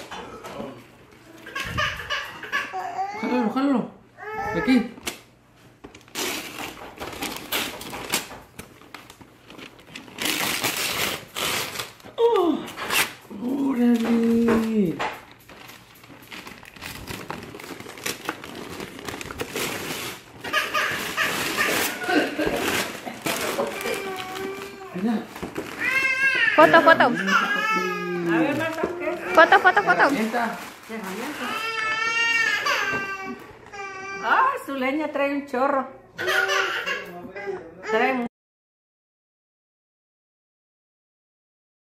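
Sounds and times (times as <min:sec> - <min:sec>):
wrapping paper tearing: 0:05.9 - 0:33.3.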